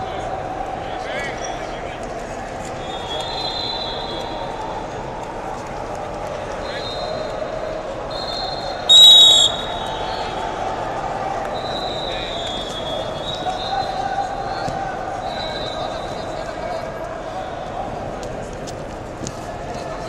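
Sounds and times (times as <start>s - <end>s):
crowd chatter in a hall: 0.0s - 20.0s
referee's whistle blast: 8.2s - 10.3s.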